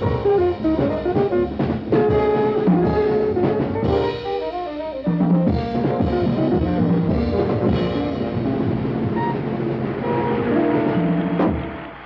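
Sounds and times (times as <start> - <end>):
tenor saxophone: 0.0 - 8.4.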